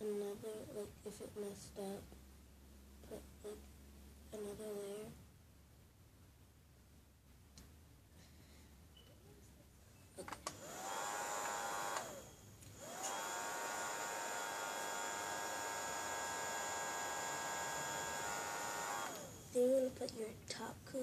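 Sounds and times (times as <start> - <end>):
small electric fan whirring: 10.2 - 20.3.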